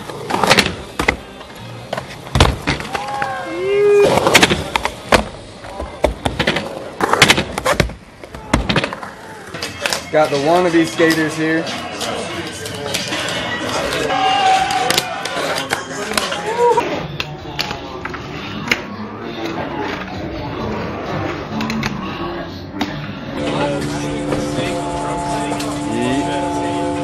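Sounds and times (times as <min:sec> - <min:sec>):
people talking: 0:10.0 - 0:27.0.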